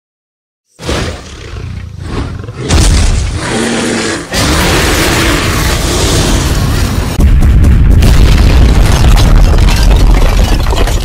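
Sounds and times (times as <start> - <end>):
deep dragon roar: 2.2 - 7.0.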